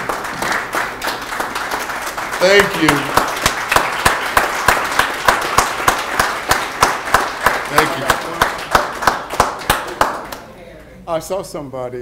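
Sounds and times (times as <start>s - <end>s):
faint applause: 0.0s - 10.5s
hands clapping: 0.0s - 10.5s.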